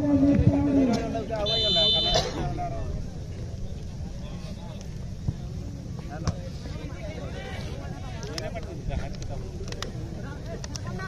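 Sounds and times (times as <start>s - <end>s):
distant spectators talking: 0.0s - 11.0s.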